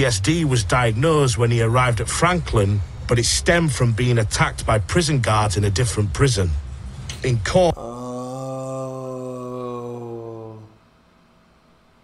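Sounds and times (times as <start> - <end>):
man humming: 7.7 - 10.9.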